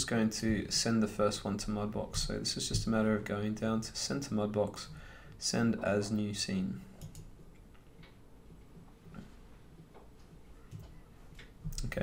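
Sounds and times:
soft clicks: 7.0s - 8.2s.

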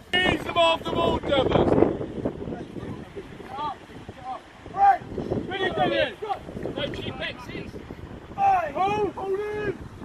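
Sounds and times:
wind buffeting microphone: 0.0s - 10.0s
voices shouting short calls: 2.4s - 9.9s.

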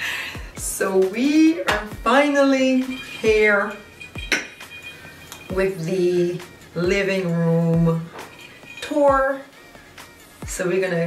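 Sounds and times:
glasses clinking on glass table: 2.8s - 5.6s, 8.1s - 9.0s.

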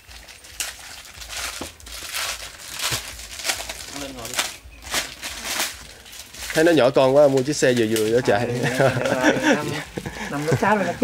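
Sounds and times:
rustling and crinkling: 0.0s - 11.0s.

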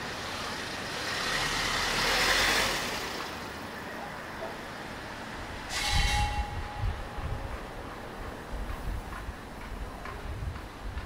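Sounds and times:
city street hum: 0.0s - 11.0s.

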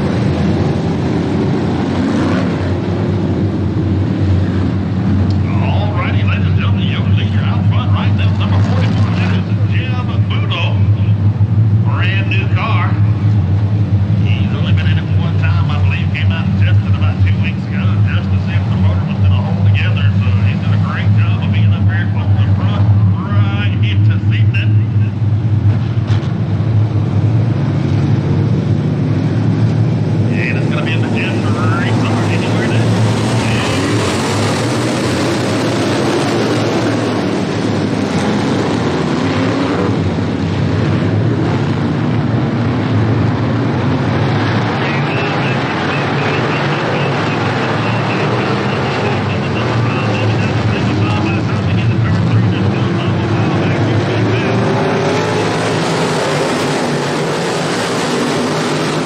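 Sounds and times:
race car engines droning: 0.0s - 59.0s
indistinct voice talking: 5.4s - 11.2s, 11.8s - 13.1s, 14.2s - 25.2s, 30.3s - 34.2s, 44.6s - 55.6s.

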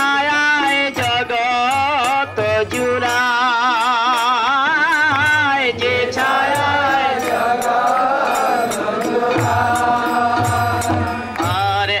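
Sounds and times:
hand cymbals and drum beat: 0.0s - 12.0s
man singing devotional song: 0.0s - 12.0s.

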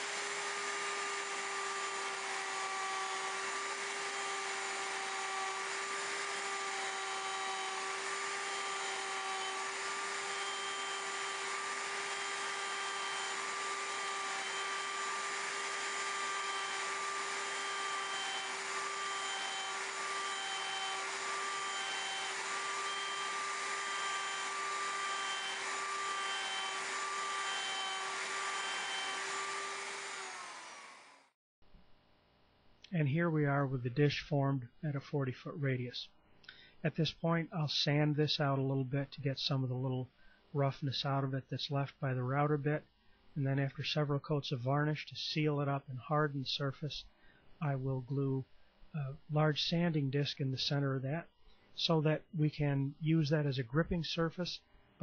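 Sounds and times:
router motor whining: 0.0s - 31.4s.

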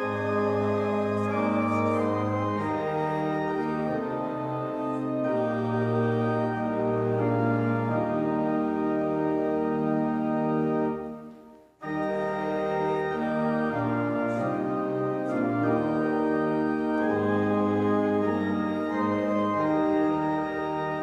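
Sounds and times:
pipe organ playing chords: 0.0s - 21.0s.

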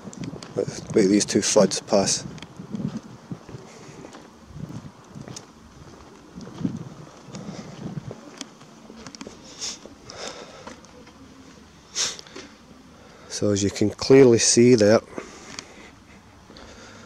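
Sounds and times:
wind on microphone: 0.0s - 8.4s
footsteps on stone pavement: 0.0s - 12.6s.

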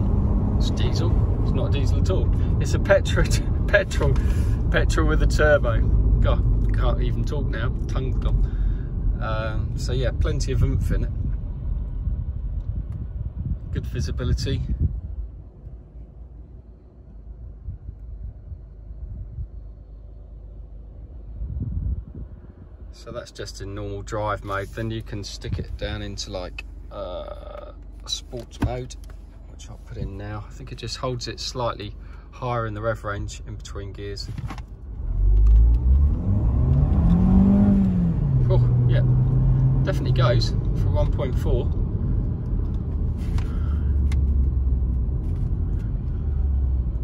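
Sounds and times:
car engine accelerating inside cabin: 0.0s - 8.4s, 34.8s - 47.0s
car engine and road rumble: 0.0s - 47.0s.

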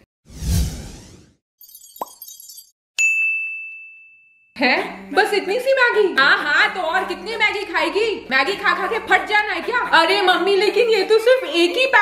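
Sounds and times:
whoosh: 0.3s - 1.4s.

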